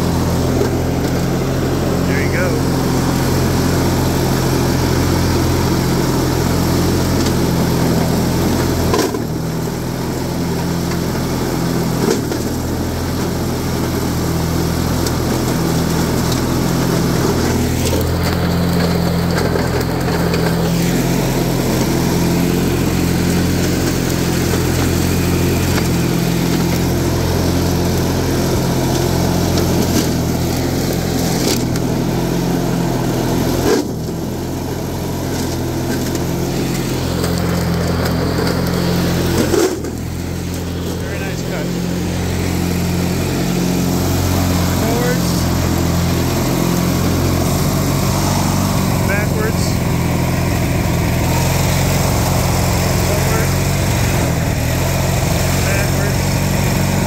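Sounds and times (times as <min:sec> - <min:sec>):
lawn tractor engine running: 0:00.0 - 0:57.0
mower blades cutting weeds: 0:00.0 - 0:57.0.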